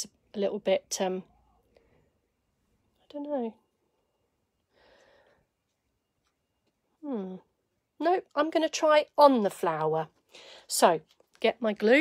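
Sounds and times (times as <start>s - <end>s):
soft breath out: 4.7s - 5.6s.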